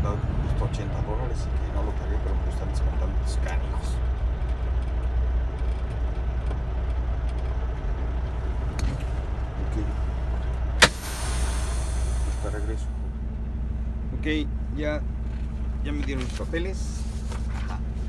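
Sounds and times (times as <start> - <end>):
truck engine idling: 0.0 - 18.0
sharp click: 10.8 - 11.5
air hiss: 10.8 - 12.9.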